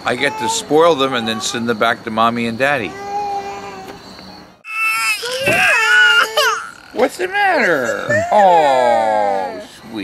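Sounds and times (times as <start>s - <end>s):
toddler crying: 0.1s - 1.8s, 2.8s - 4.0s, 4.6s - 6.9s, 7.6s - 8.7s.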